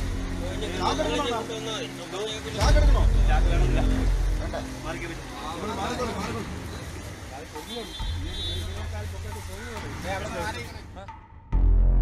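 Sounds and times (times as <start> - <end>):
people talking and calling: 0.0 - 11.4.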